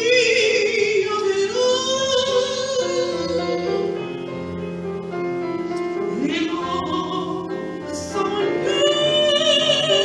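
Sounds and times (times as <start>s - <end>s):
woman singing operatic notes: 0.0s - 3.9s, 6.1s - 10.0s.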